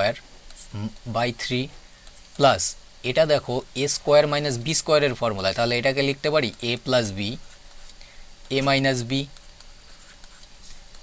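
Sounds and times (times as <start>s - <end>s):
stylus scratching on tablet: 0.5s - 1.0s, 6.0s - 11.0s.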